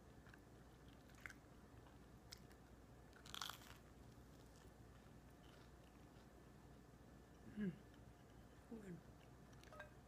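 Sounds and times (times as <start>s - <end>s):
faint chewing: 0.0s - 9.8s
crunchy bite into toast: 3.2s - 3.9s.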